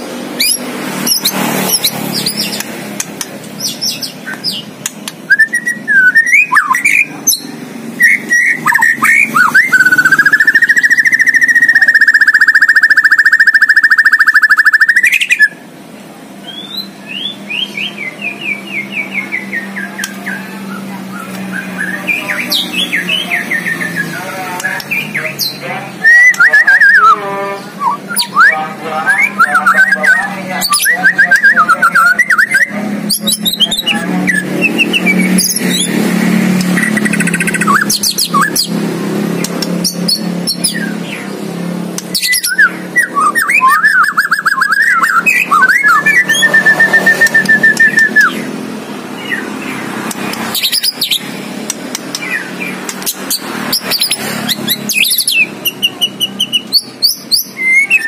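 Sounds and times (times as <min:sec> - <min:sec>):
songbird singing varied song: 0:03.6 - 0:15.6, 0:36.6 - 0:58.0.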